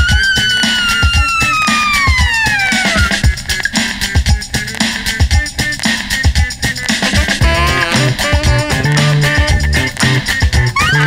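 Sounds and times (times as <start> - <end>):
held note sliding down in pitch: 0.0 - 3.2
recorded music with drum beat: 0.0 - 11.0.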